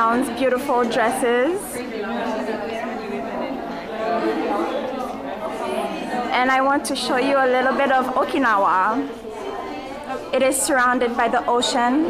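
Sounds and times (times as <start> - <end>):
women chatting: 0.0 - 4.5, 5.4 - 12.0.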